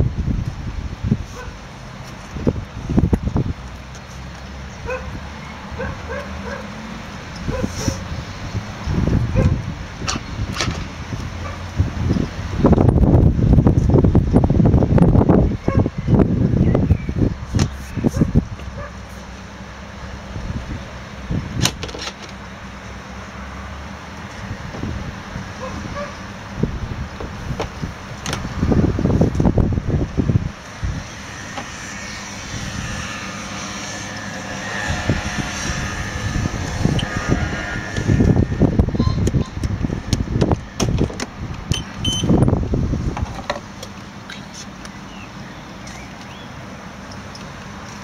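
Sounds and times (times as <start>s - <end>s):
steady low rumble: 0.0s - 21.7s, 22.3s - 45.1s
low steady hum: 26.2s - 48.0s.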